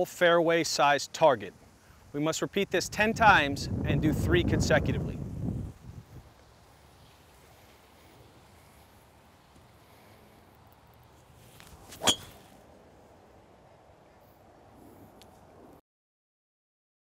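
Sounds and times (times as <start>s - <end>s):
club swishing: 11.6s - 12.6s
golf club striking ball: 11.9s - 12.6s.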